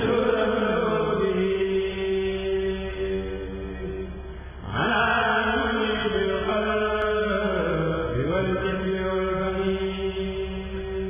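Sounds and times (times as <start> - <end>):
male voices chanting in unison: 0.0 - 11.0.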